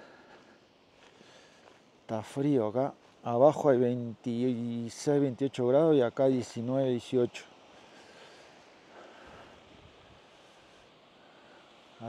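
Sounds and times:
faint wind noise on microphone: 0:09.2 - 0:10.9.

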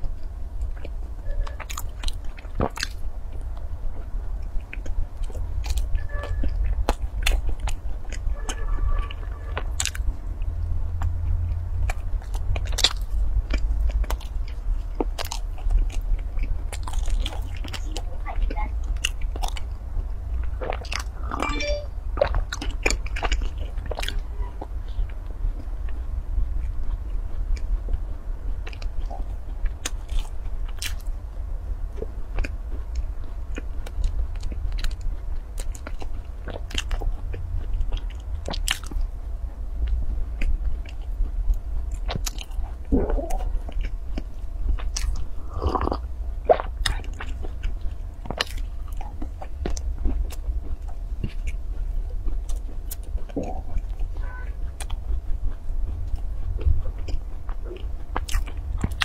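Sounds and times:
close-miked chewing with mouth clicks: 0:00.0 - 0:21.6, 0:22.2 - 0:59.0
steady low hum: 0:00.0 - 0:59.0
wet mouth clicks: 0:44.9 - 0:47.4.

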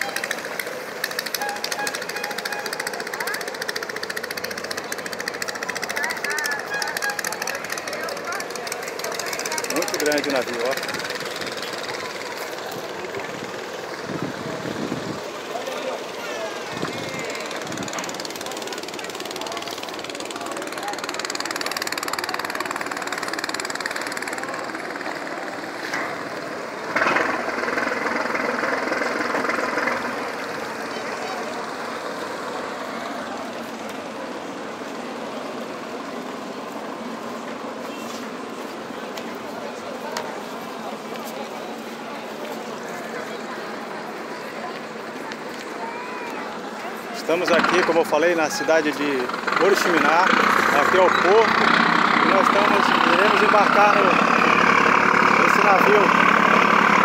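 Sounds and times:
boat engine running: 0:00.0 - 0:45.8, 0:46.4 - 0:57.0
crowd chatter: 0:00.0 - 0:57.0.

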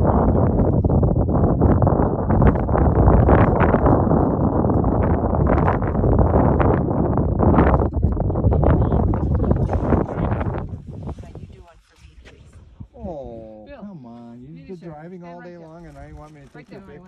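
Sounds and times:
wind buffeting microphone: 0:00.0 - 0:13.5.

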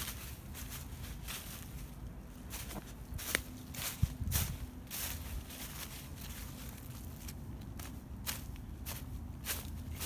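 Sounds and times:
footsteps in dry leaves: 0:00.0 - 0:10.0
steady low rumble: 0:00.0 - 0:10.0.

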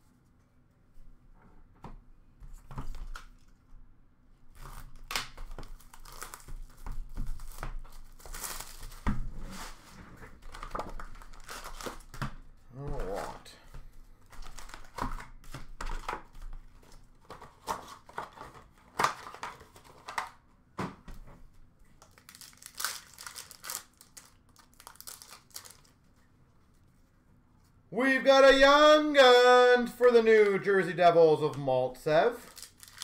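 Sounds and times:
plastic wrappers crinkling and tearing: 0:04.5 - 0:09.0, 0:10.4 - 0:12.2, 0:14.3 - 0:20.4, 0:22.0 - 0:26.2, 0:32.3 - 0:33.0.

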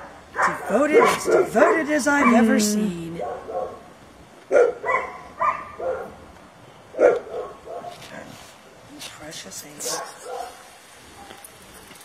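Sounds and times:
dog barking: 0:00.0 - 0:02.5, 0:03.2 - 0:03.9, 0:04.5 - 0:06.2, 0:06.9 - 0:08.3, 0:09.8 - 0:11.5.

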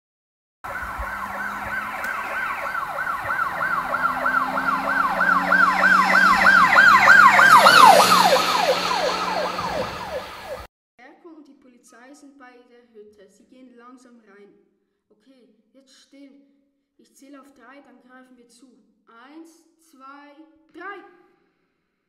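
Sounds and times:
police siren wailing: 0:00.7 - 0:10.7.

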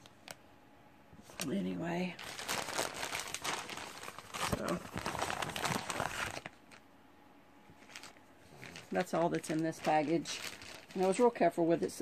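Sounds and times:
packaging crinkling: 0:01.2 - 0:06.8, 0:07.7 - 0:12.0
plastic bag rustling: 0:01.2 - 0:06.8, 0:07.7 - 0:12.0.

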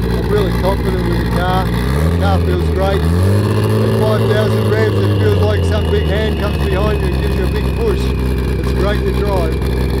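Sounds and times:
engine idling: 0:00.0 - 0:10.0
man's voice: 0:03.9 - 0:09.6.

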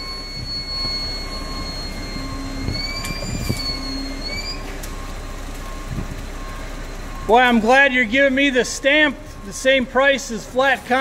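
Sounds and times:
high wavering whine: 0:00.0 - 0:10.4
heavy construction machinery running: 0:00.0 - 0:11.0.

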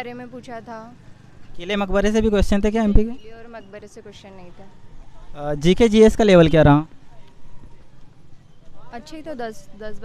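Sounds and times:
woman speaking: 0:00.0 - 0:01.0, 0:03.2 - 0:04.7, 0:09.0 - 0:10.0
distant voices: 0:00.0 - 0:10.0
outdoor crowd and street noise: 0:00.0 - 0:10.0.

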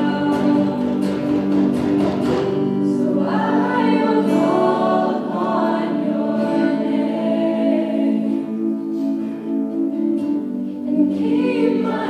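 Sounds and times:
group singing worship song: 0:00.0 - 0:09.3, 0:10.8 - 0:12.0
sustained instrumental chords: 0:00.0 - 0:12.0.

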